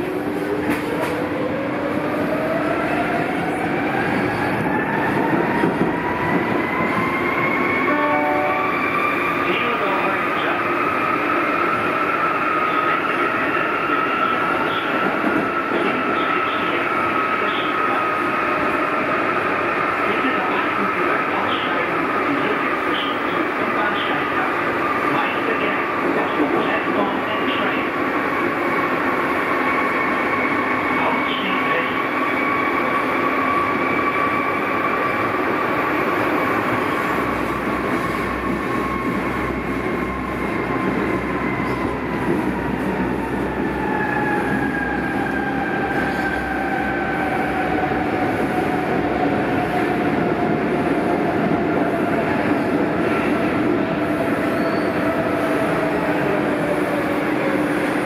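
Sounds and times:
subway train rumble with whine: 0.0 - 58.0.

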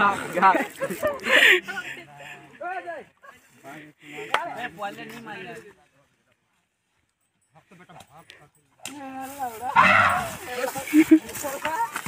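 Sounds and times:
people shouting and yelling: 8.8 - 12.0.

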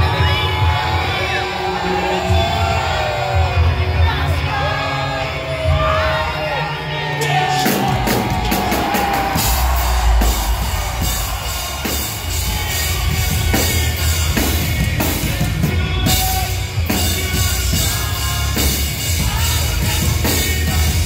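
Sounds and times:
drum kit beating: 7.2 - 21.0
bass guitar: 7.4 - 21.0.

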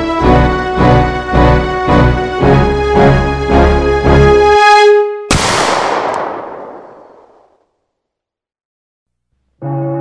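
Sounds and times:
music: 0.0 - 5.3, 9.4 - 10.0
pistol shot with echo: 5.3 - 7.6.

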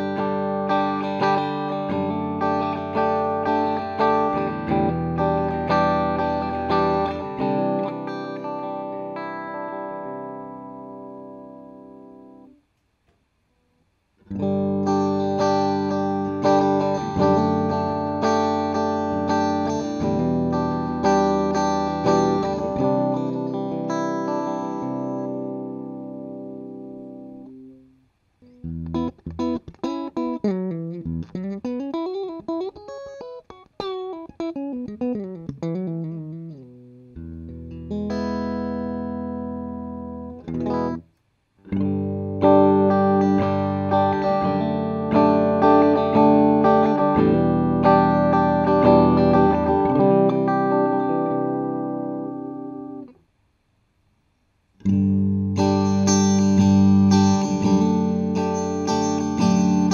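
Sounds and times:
picked single-note guitar lines: 0.0 - 12.6, 14.2 - 53.2, 54.8 - 59.9
strummed guitar chords: 0.0 - 12.6, 14.2 - 53.2, 54.8 - 59.9.

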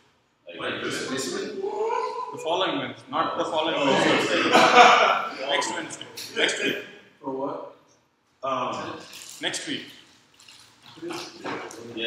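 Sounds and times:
people talking: 0.5 - 7.6, 8.4 - 9.9, 10.9 - 12.0.

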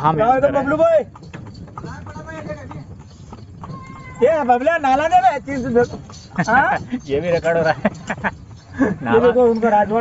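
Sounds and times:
hooves clip-clopping on road: 0.0 - 10.0.

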